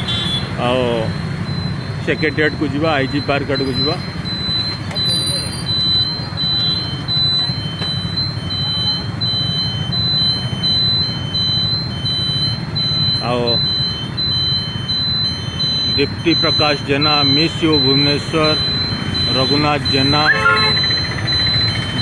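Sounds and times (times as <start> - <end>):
high electronic beep: 0.0 - 22.0
motorcycle and traffic engines: 0.0 - 22.0.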